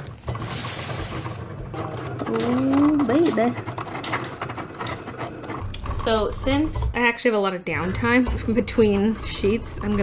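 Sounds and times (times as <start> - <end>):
cutting machine humming and clicking: 1.6 - 7.0.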